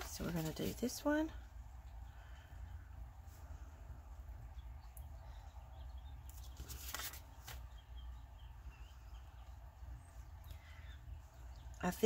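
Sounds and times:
paper rustle: 0.0s - 0.9s, 6.3s - 7.8s
low steady hum: 0.0s - 12.0s.

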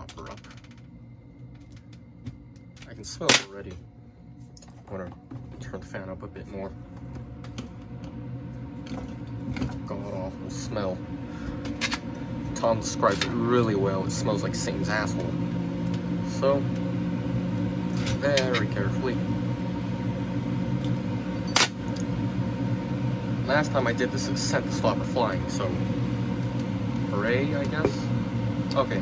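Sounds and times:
exhaust fan humming: 0.0s - 29.0s.

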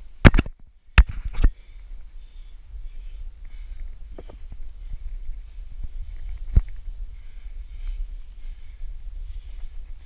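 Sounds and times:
low rumbling handling noise: 0.0s - 10.0s.

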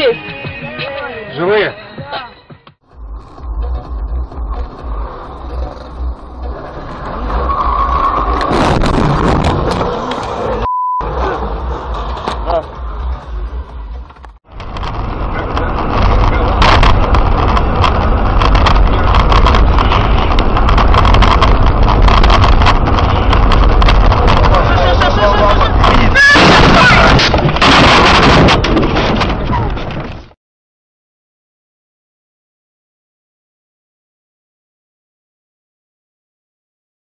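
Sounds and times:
car engine and road noise: 2.7s - 30.4s
short single-tone beep: 10.6s - 11.1s.

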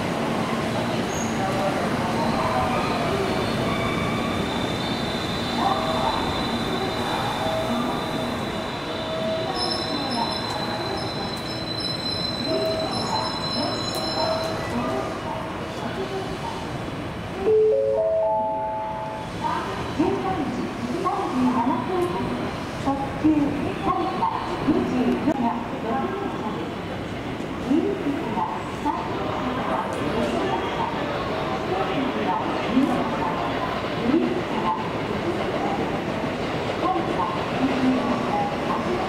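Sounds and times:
train noise: 0.0s - 39.0s
high steady tone: 17.4s - 19.2s.

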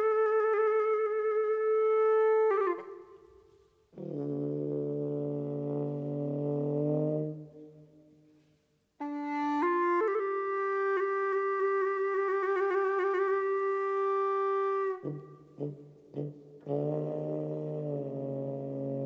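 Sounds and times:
free-reed pipe melody: 0.0s - 8.4s, 9.0s - 19.0s.

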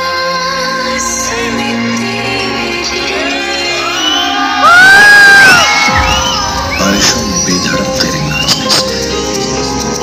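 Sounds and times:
dance music: 0.0s - 10.0s
guests cheering and whooping: 3.7s - 7.0s
loud high whoop: 3.8s - 6.8s.

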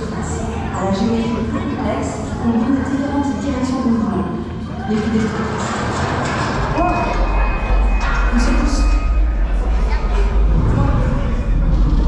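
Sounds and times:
deep rumble: 6.4s - 12.0s.

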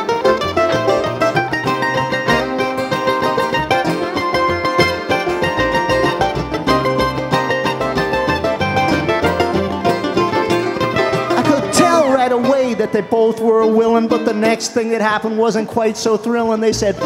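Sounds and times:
acoustic guitar: 0.0s - 17.0s
quick mandolin picking: 0.0s - 17.0s
upright bass: 0.0s - 17.0s.

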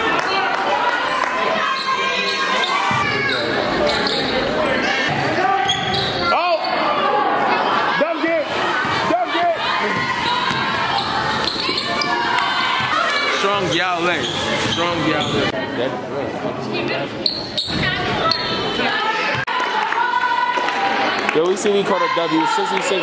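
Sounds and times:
voices echoing in hall: 0.0s - 23.0s
sneakers squeaking: 1.6s - 6.9s, 9.6s - 15.6s, 17.2s - 19.4s
basketball bouncing: 9.9s - 12.9s.

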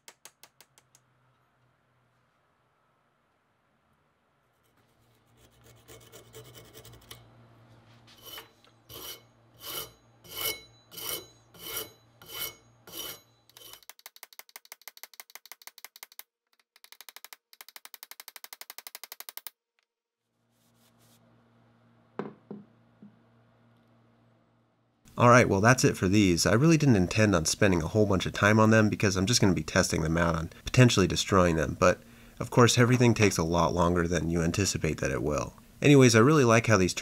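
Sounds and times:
rasping strokes on wood: 4.6s - 7.2s.

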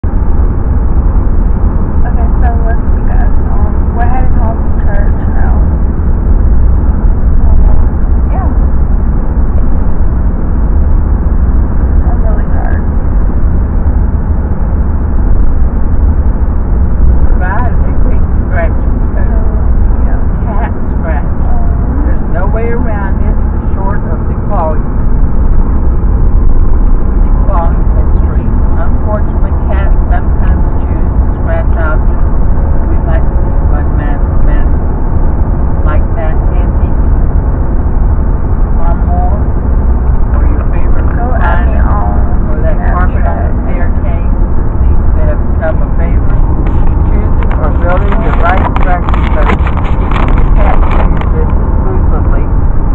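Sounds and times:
road and engine rumble in car: 0.0s - 52.9s
indistinct voices: 2.0s - 52.9s.

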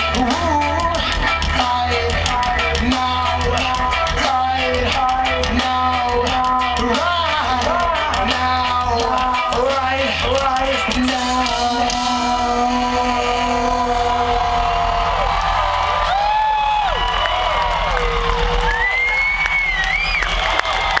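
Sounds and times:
crowd cheering and whistling: 13.2s - 21.0s.

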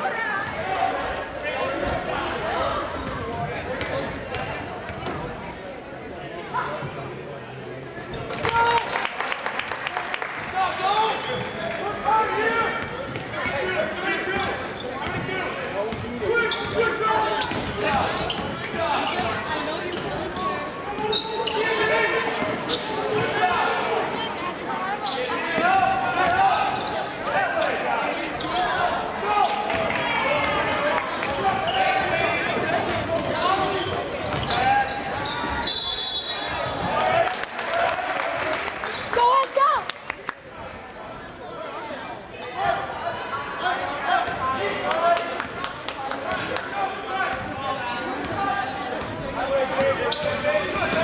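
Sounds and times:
shouts and chatter: 0.0s - 5.8s, 8.0s - 51.0s.

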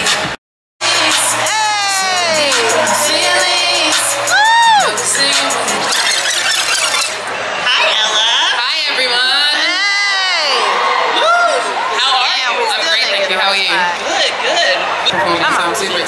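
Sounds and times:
backing music: 0.0s - 7.3s
woman singing through pa: 0.8s - 6.0s
crowd cheering: 0.8s - 16.0s.

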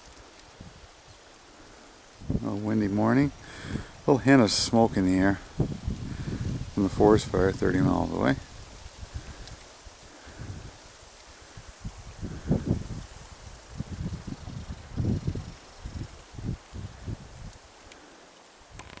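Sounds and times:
faint steady hiss: 0.0s - 19.0s
wind buffeting microphone: 2.1s - 17.8s.

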